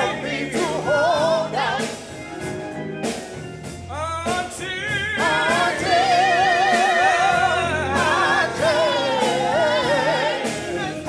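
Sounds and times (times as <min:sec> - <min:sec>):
gospel singing with vibrato: 0:00.0 - 0:11.0
sustained instrumental accompaniment: 0:00.0 - 0:11.0.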